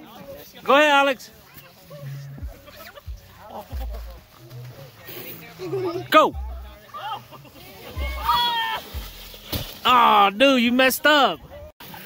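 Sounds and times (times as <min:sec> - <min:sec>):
shouted exclamation: 0:08.0 - 0:08.9.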